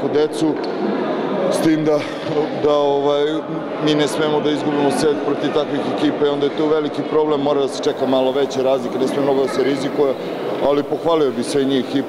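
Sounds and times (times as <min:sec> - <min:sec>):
man speaking: 0:07.6 - 0:12.0.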